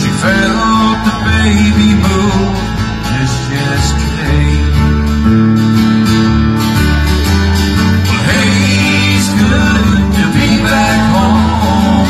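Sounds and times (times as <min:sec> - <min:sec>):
acoustic guitars strumming: 0:00.0 - 0:12.0
bass guitar: 0:00.0 - 0:12.0.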